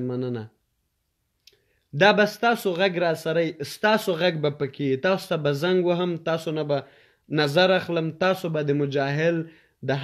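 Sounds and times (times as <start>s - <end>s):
man speaking: 0.0s - 0.6s, 1.9s - 10.0s.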